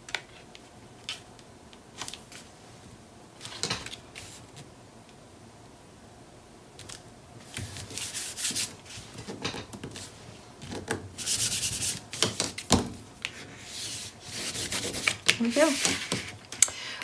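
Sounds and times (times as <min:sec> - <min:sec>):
dry rubbing strokes on paper: 0:07.8 - 0:09.1, 0:11.2 - 0:12.1, 0:13.4 - 0:16.3.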